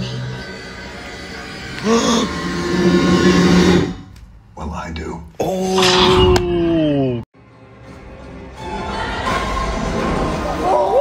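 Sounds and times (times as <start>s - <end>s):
low musical drone: 0.0s - 4.0s.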